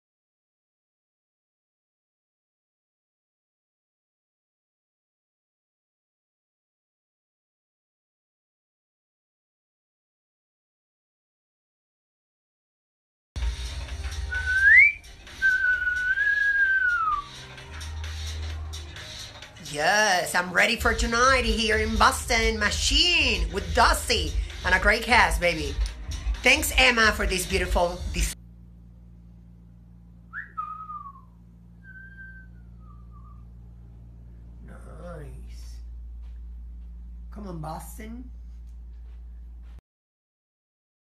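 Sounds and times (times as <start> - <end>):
low room rumble: 13.4 - 39.8
steady low hum: 13.4 - 39.8
person whistling: 14.3 - 17.5, 30.3 - 33.5.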